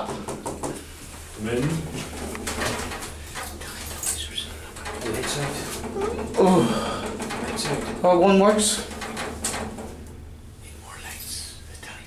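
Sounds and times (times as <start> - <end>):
lift car clicks and rattles: 1.6 - 10.5
lift drive humming: 4.5 - 10.6.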